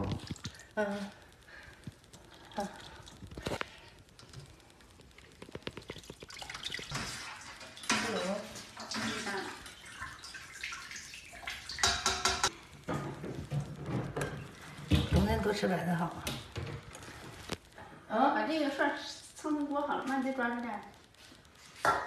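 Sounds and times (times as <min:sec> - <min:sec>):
tap running into sink: 0:11.7 - 0:14.3.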